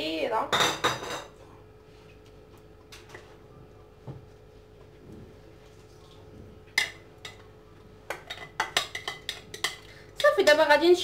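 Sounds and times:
spoon clinking against bowl: 8.1 - 9.9.

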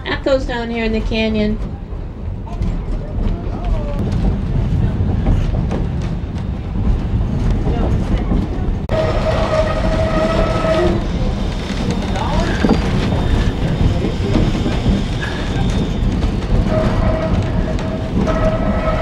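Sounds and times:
train rumbling: 0.0 - 19.0
steam locomotive whistle: 8.9 - 11.0.

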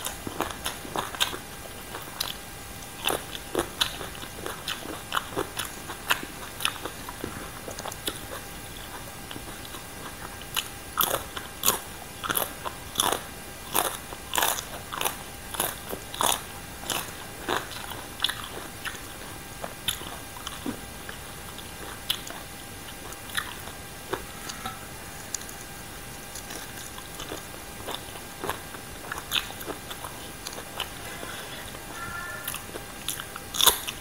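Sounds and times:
crunchy chewing: 0.0 - 34.0.

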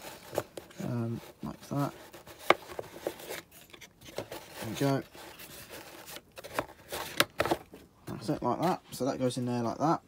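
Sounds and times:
plastic rubbing: 0.0 - 8.8.

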